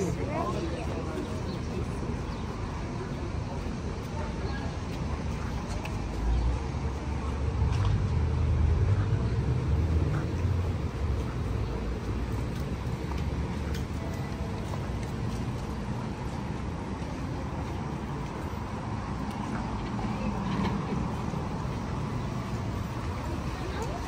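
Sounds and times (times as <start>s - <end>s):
traffic rumble: 0.0s - 24.0s.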